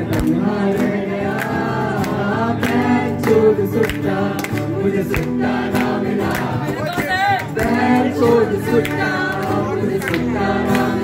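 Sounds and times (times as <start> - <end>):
acoustic guitar strumming: 0.0 - 11.0
people singing through pa: 0.0 - 11.0.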